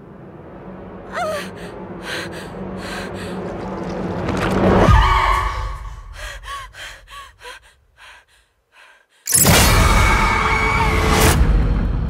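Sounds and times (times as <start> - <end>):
woman gasping: 1.2 - 3.4, 6.1 - 9.3.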